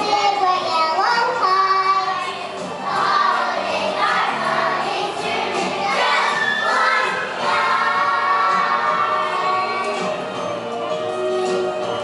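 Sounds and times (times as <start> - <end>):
children's choir singing: 1.1 - 12.0.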